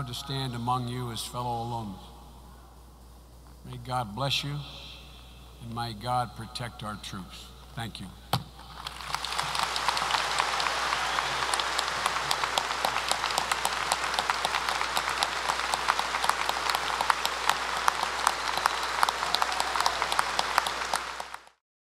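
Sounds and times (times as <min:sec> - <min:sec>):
large audience applauding: 0:08.6 - 0:21.6.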